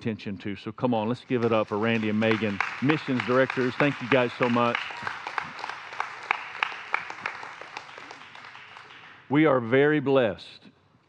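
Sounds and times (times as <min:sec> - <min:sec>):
congregation applauding: 0:01.2 - 0:09.3.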